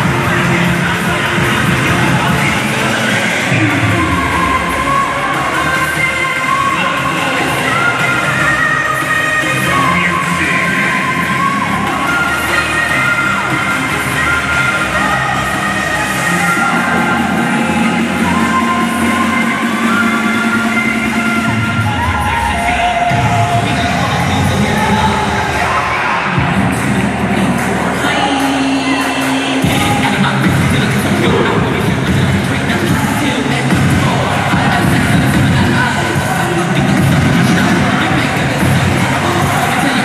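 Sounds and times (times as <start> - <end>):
crowd cheering: 0.0 - 40.0
loud cheerleading music: 0.0 - 40.0.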